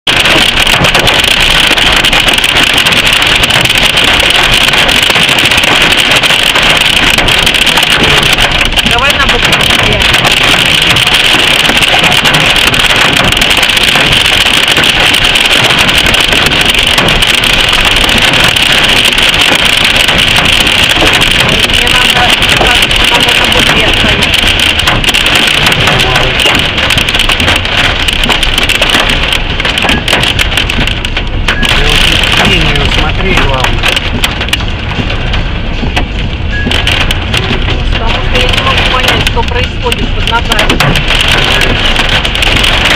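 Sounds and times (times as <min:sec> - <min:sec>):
hail hitting car roof: 0:00.0 - 0:42.9.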